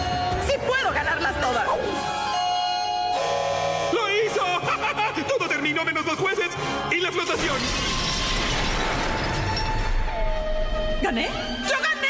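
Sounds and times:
glass shattering: 7.2s - 10.1s.

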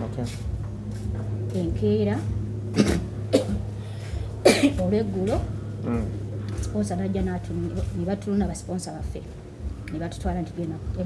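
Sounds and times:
steady low hum: 0.0s - 11.0s
person coughing: 2.7s - 3.7s, 4.4s - 4.9s.

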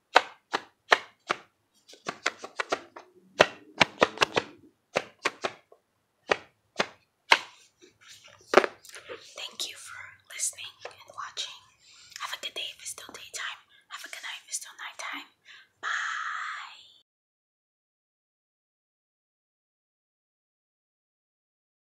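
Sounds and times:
soft whispering: 8.0s - 17.0s.

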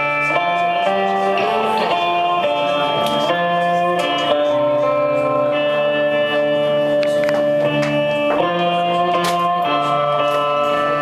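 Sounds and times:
electric guitar ringing chords: 0.0s - 11.0s.

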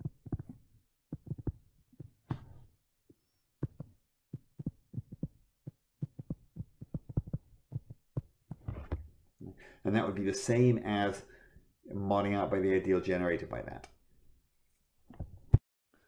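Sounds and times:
stylus tapping on tablet screen: 0.0s - 2.6s, 3.6s - 9.0s.

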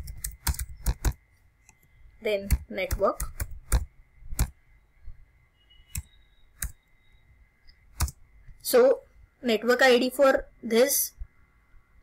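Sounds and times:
computer keyboard keystrokes: 0.0s - 1.2s, 2.4s - 4.6s, 5.9s - 6.8s, 8.0s - 8.2s.

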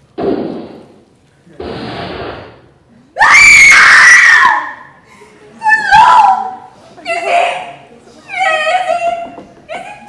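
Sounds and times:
loud high-pitched scream: 3.2s - 4.9s.

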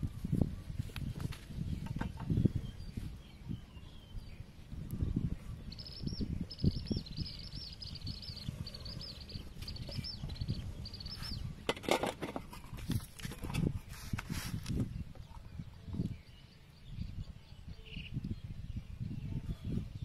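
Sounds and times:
small bird chirping: 0.2s - 11.7s.

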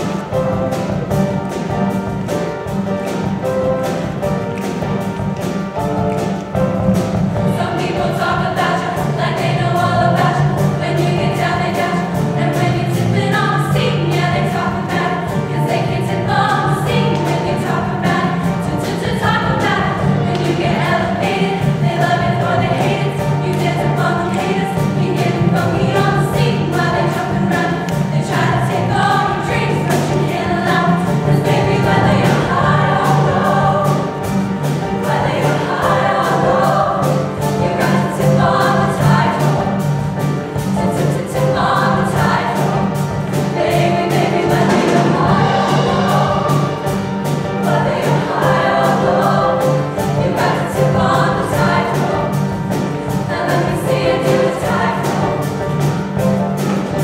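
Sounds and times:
loud accompaniment with steady beat: 0.0s - 57.0s
women's choir singing: 7.2s - 57.0s.

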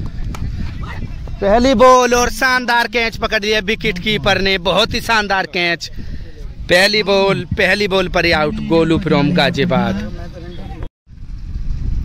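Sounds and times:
wind buffeting microphone: 0.0s - 12.0s
faint voices: 5.8s - 10.9s.

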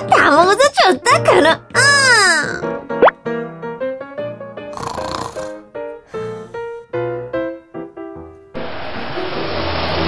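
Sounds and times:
plucked children's music: 0.0s - 3.4s.

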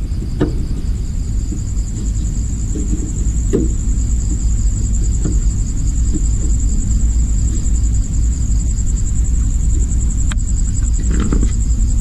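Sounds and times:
constant low rumble: 0.0s - 12.0s.

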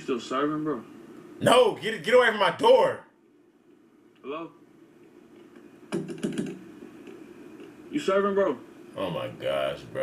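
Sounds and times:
faint low hum: 0.0s - 10.0s
phone clicks and taps: 5.6s - 6.6s.

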